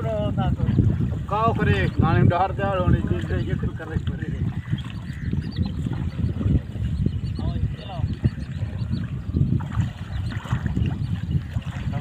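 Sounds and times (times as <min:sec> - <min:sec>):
wind rumble on microphone: 0:00.0 - 0:12.0
water sloshing around legs: 0:00.6 - 0:12.0.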